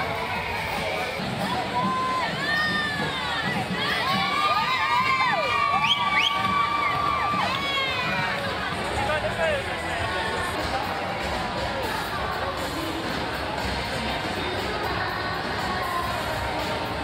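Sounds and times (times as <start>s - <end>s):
crowd cheering and shouting: 0.0s - 17.0s
high-pitched shrieks and whoops: 3.9s - 8.3s.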